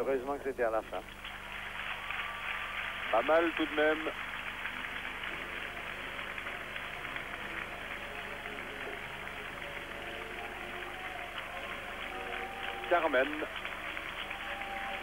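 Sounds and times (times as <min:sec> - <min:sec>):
audience applauding: 0:01.0 - 0:15.0
faint crowd voices: 0:01.8 - 0:15.0.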